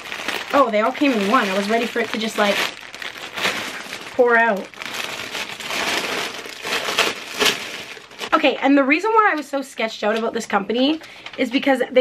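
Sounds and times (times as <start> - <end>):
plastic bag crinkling: 0.0 - 8.4.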